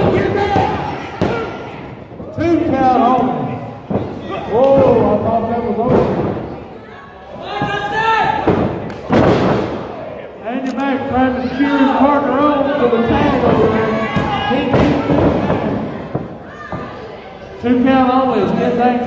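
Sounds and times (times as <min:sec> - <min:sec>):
people shouting: 0:00.0 - 0:01.9, 0:13.0 - 0:17.0.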